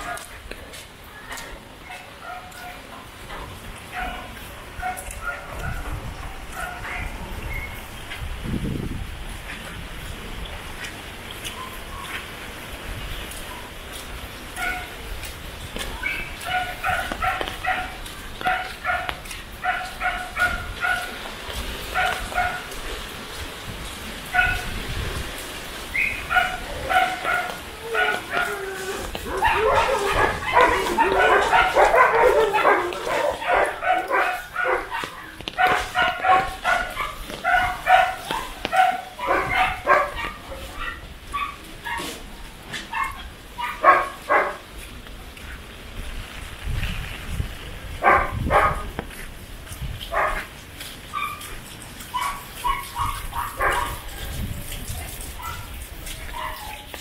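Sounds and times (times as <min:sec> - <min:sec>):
dog barking in high yaps: 0:03.9 - 0:05.9, 0:06.5 - 0:07.8, 0:14.6 - 0:15.0, 0:15.9 - 0:21.2, 0:21.9 - 0:22.8, 0:24.3 - 0:24.7, 0:25.9 - 0:42.2, 0:42.9 - 0:44.6, 0:48.0 - 0:49.0, 0:50.1 - 0:57.0.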